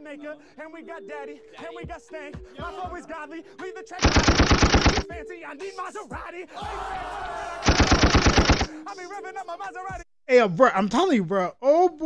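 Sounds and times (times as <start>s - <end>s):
rapid burst of sharp hits: 4.0s - 5.0s, 7.7s - 8.7s.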